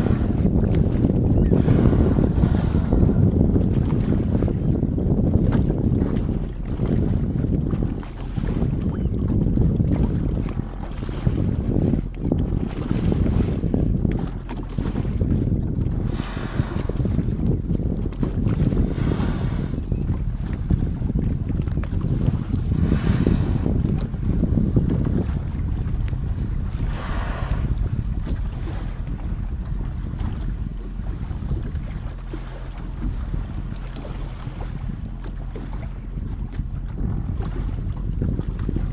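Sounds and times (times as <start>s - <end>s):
boat motor running: 0.0s - 38.9s
wind buffeting microphone: 0.0s - 38.9s.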